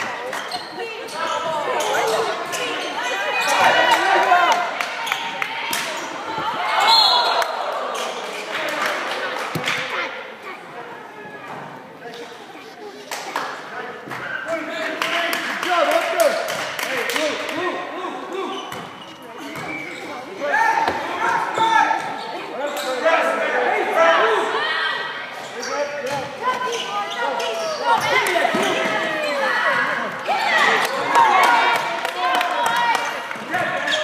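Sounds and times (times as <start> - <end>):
sneakers squeaking: 0.0 - 4.0, 4.9 - 8.6, 18.3 - 23.4, 25.0 - 30.8.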